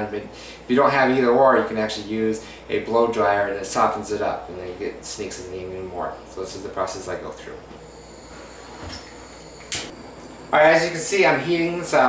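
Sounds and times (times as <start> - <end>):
blowtorch flame hissing: 7.8 - 10.6.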